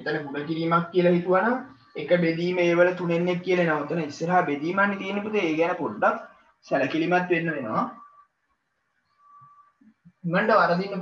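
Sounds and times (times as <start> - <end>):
faint whistle-like tone: 7.6 - 8.4, 9.0 - 10.3.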